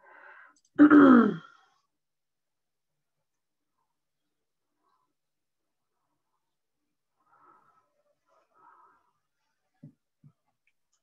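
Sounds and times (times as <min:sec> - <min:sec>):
person clearing throat: 0:00.8 - 0:01.5.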